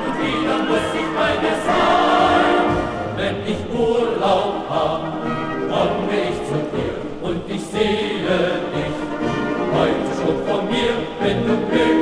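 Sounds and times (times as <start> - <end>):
instrumental accompaniment: 0.0 - 7.0
choir singing: 0.0 - 12.0.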